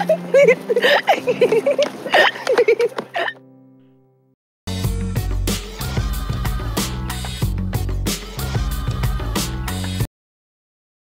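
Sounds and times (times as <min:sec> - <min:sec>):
laughter in short bursts: 0:00.0 - 0:03.4
background music: 0:00.0 - 0:10.1.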